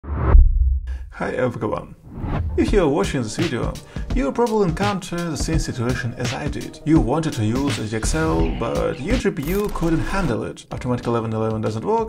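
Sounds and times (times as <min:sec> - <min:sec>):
deep loud boom: 0:00.0 - 0:01.2, 0:02.1 - 0:02.9.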